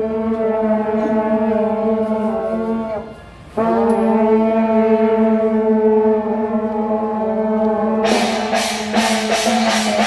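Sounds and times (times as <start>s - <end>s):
long steady horn note: 0.0s - 10.0s.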